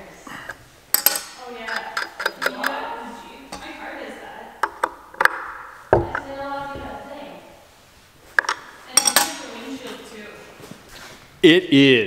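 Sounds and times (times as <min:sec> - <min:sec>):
ringing metallic clank: 0:00.9 - 0:02.7, 0:08.9 - 0:09.7
wrench clinking on metal: 0:00.9 - 0:02.8, 0:08.4 - 0:09.6
sharp clicks: 0:01.0 - 0:02.8.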